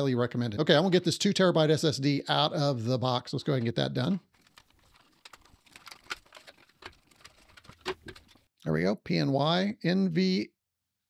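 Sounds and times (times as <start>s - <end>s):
cardboard box rustling: 4.4s - 8.4s.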